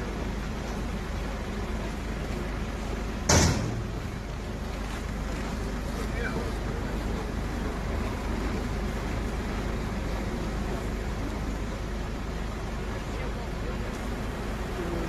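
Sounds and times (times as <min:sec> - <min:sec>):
sharp loud knock: 0:03.3 - 0:04.0
truck engine running: 0:06.6 - 0:15.0.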